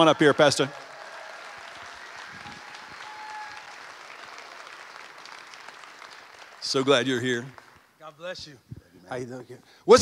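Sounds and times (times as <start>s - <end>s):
congregation applauding: 0.0s - 8.3s.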